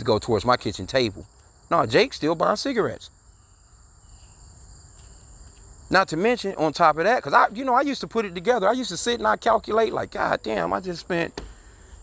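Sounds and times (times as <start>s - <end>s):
man talking: 0.0s - 3.1s, 5.9s - 11.4s.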